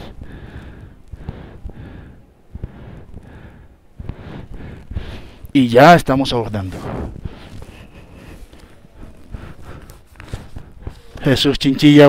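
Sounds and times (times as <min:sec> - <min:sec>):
terminal hall background noise: 0:05.2 - 0:12.0
footsteps walking: 0:06.5 - 0:11.4.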